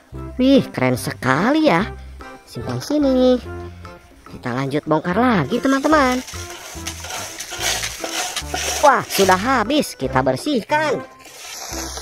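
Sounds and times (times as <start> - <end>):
background music: 0.0 - 12.0
hand scraping wet sand: 5.4 - 9.8.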